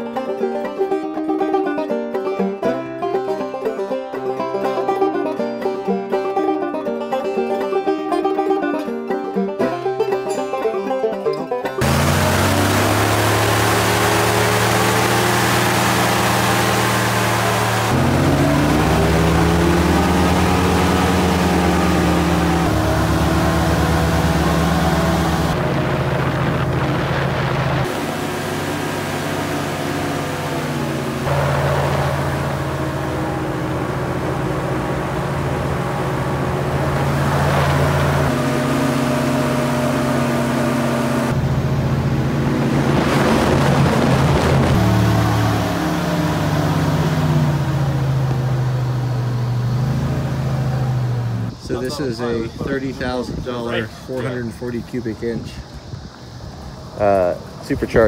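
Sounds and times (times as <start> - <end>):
airboat engine and propeller drone: 11.8 - 54.5.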